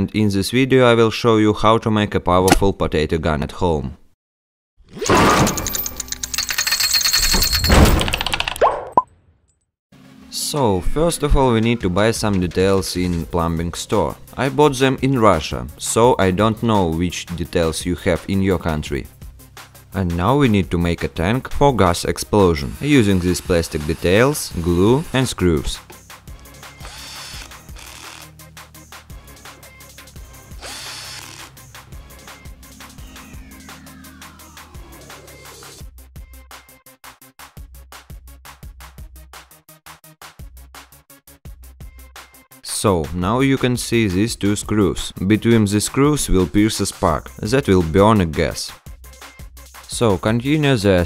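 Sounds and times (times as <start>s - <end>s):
background music: 10.0s - 51.0s
cordless drill whirring: 26.5s - 28.4s, 30.4s - 31.7s.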